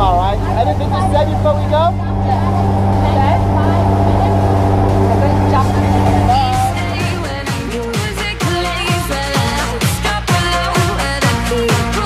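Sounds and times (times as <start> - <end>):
propeller aircraft engines droning: 0.0 - 8.8.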